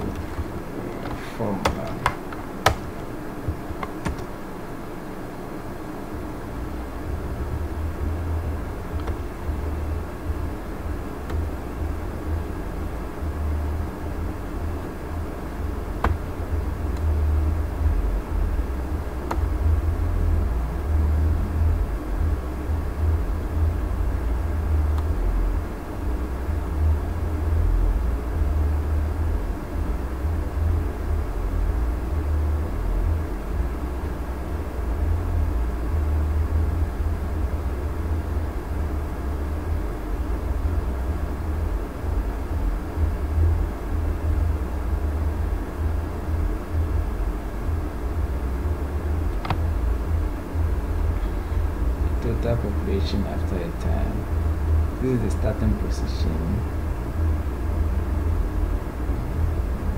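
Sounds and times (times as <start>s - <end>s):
low background rumble: 0.0s - 59.9s.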